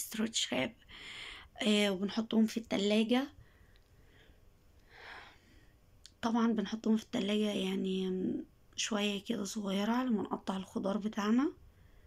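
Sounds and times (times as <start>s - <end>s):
faint breathy noise: 0.8s - 1.6s, 3.3s - 6.0s, 11.6s - 12.0s.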